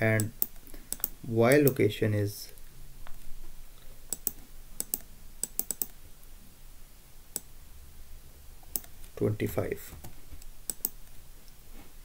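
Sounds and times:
computer keyboard keystrokes: 4.1 - 6.0, 10.7 - 11.0.

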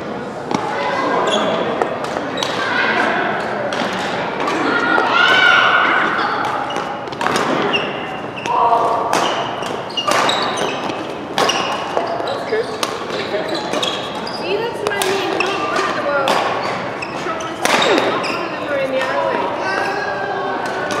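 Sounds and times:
shoes squeaking on court floor: 1.1 - 2.7, 5.9 - 21.0
rackets striking shuttlecock: 6.4 - 7.8, 8.4 - 18.3.

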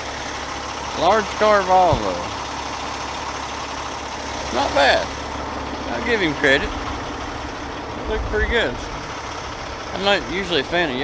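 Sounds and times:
diesel trucks idling: 0.0 - 11.0.

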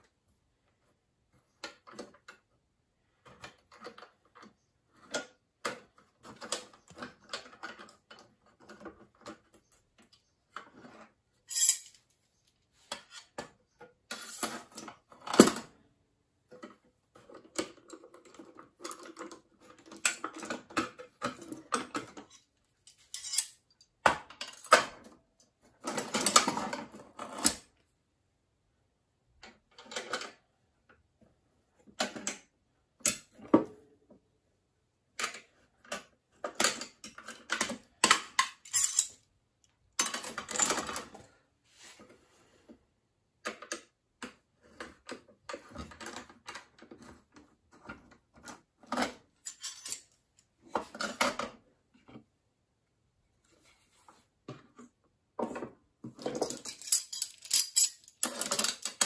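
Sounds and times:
metal clamps clinking: 11.5 - 12.0, 22.9 - 23.6, 38.4 - 39.2, 49.5 - 50.0, 56.3 - 59.0.

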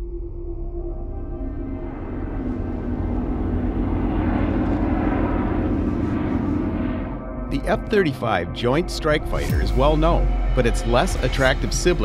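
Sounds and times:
jet fighter flying overhead: 2.0 - 12.0.

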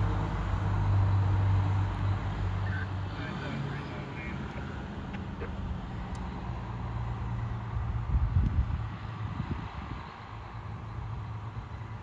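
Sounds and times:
fire engine rumbling: 0.0 - 12.0.

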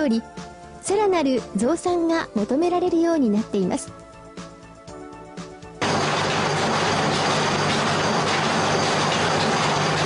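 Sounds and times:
loud machine noise: 5.8 - 10.0.

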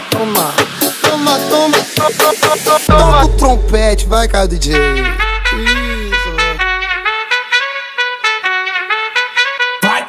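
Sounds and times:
deep bass note: 2.9 - 7.1
trumpet playing quick notes: 4.6 - 9.8.

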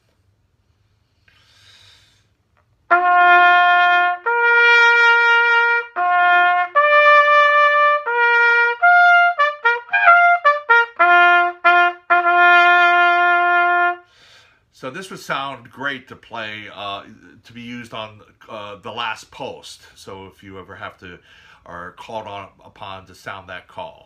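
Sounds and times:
bugle playing a call: 2.9 - 14.0.

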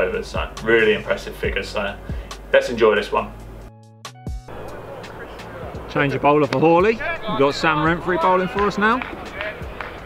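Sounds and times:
open-air background noise: 4.5 - 10.0.

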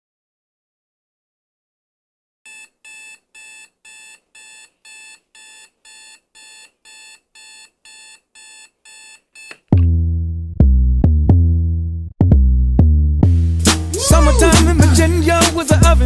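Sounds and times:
electronic alarm beeping: 2.5 - 9.6
loud bass-heavy music: 9.8 - 16.0.

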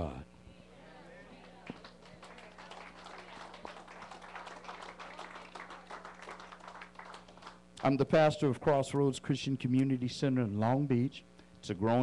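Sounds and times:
electrical hum: 0.0 - 12.0
audience clapping: 1.4 - 8.0.

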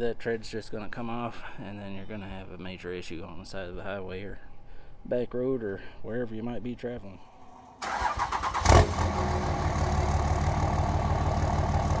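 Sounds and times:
truck engine starting and idling: 7.5 - 12.0.

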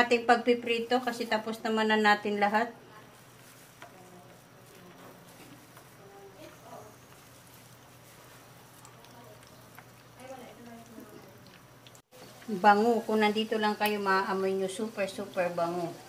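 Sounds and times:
fish frying in oil: 3.2 - 16.0.

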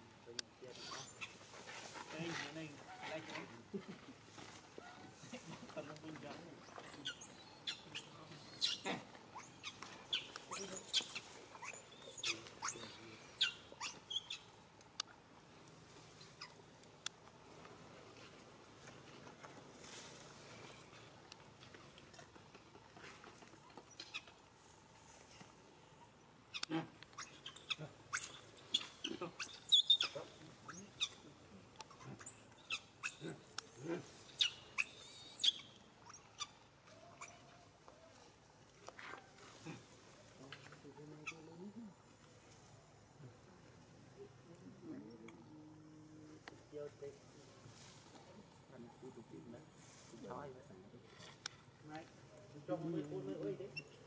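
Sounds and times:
monkey squeaking: 0.8 - 1.5, 6.6 - 14.5, 26.5 - 37.5, 53.7 - 54.0.

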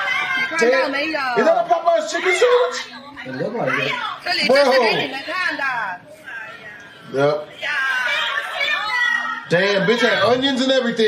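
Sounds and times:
women talking rapidly: 0.0 - 10.3.

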